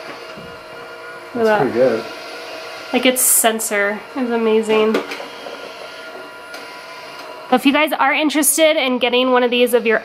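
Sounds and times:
robot vacuum motor whirring: 0.0s - 10.0s.

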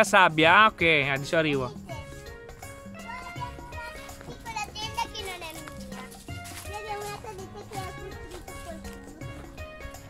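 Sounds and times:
background music: 0.0s - 10.0s
girl speaking: 2.9s - 9.4s.

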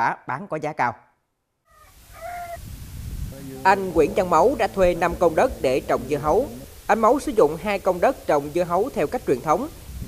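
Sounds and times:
bird calling: 1.7s - 2.6s
steady outdoor hiss: 1.8s - 10.0s.

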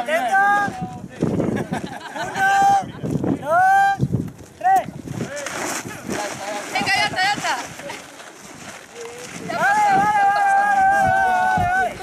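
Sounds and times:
people shouting over one another: 0.0s - 0.8s, 2.4s - 4.0s, 9.4s - 12.0s.

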